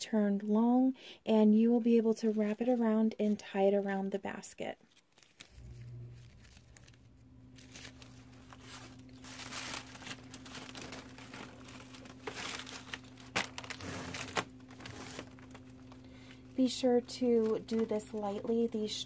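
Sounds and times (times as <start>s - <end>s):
shrink wrap crinkling: 1.5s - 19.0s
steady low hum: 5.4s - 19.0s.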